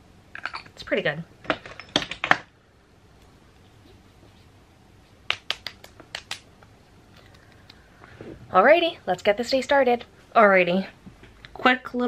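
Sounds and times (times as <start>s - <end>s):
fingertips patting face: 5.3s - 6.5s.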